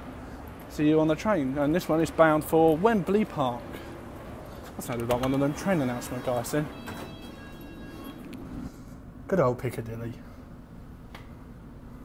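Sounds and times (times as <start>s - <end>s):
underground train rumble: 0.0s - 12.0s.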